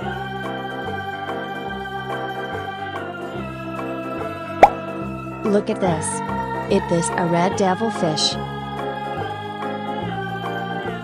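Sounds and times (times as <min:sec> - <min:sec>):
organ-like background music: 0:00.0 - 0:11.0.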